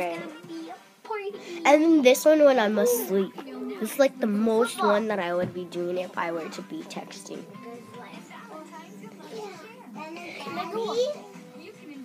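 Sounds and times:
children talking: 0.0 - 12.0.

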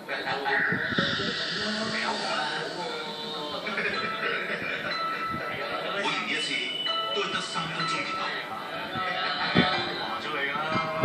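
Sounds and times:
person speaking: 0.0 - 8.5
steady hiss from tv speaker: 0.0 - 11.0.

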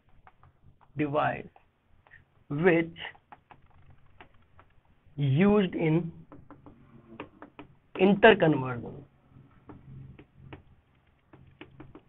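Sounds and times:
marker pen writing on whiteboard: 0.0 - 2.4, 3.0 - 5.0, 6.0 - 8.5, 9.3 - 12.0
low room hum: 0.0 - 12.0.

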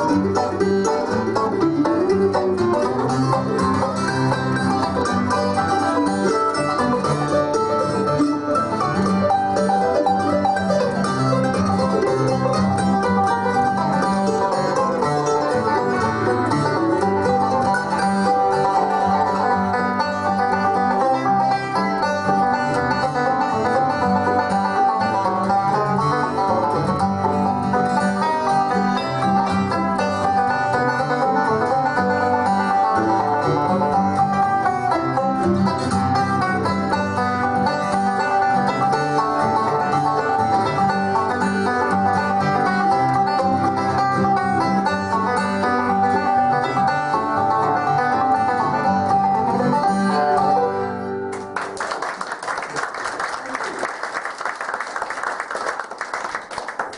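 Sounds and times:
banjo: 0.0 - 56.9
bluegrass band playing: 0.0 - 56.9
audience applauding: 51.3 - 56.9.

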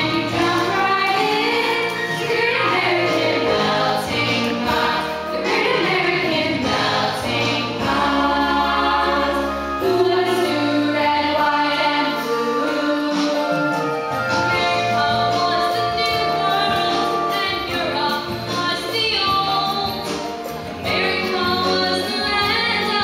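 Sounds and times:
children singing: 0.0 - 18.6.

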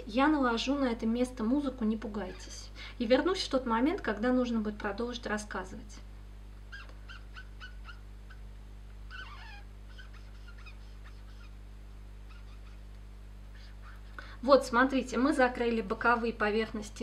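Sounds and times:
steady low hum: 0.0 - 17.0
marker squeaking on paper: 6.7 - 8.4, 9.1 - 11.6, 12.3 - 12.9, 13.5 - 14.0.

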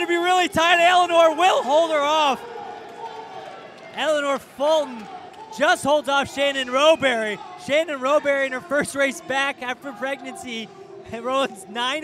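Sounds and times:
man commentating: 0.0 - 2.4, 4.0 - 12.0
crowd noise: 0.0 - 12.0.

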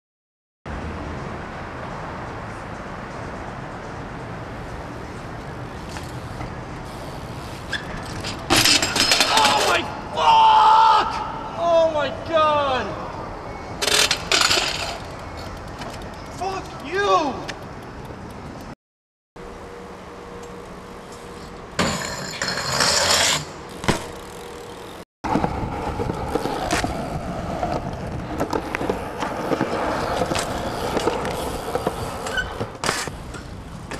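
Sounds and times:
bike rolling on concrete: 0.7 - 10.0, 13.8 - 18.8, 19.4 - 33.9
low street hum: 0.7 - 18.8, 19.4 - 33.9
bike landing impact: 8.0 - 9.8, 23.8 - 24.4.

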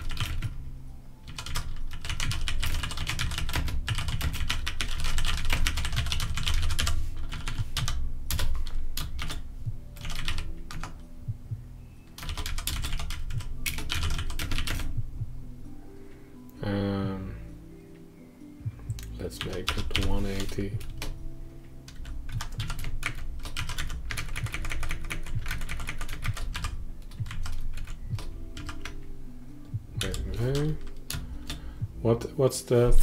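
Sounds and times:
fast typing on keyboard: 0.0 - 0.6, 1.2 - 9.4, 10.0 - 11.0, 12.2 - 14.9, 19.4 - 21.2, 21.9 - 29.0, 30.0 - 31.6.

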